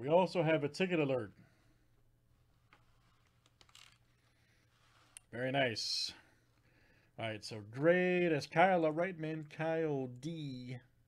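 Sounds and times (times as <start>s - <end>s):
soft paper rustle: 2.3s - 5.4s.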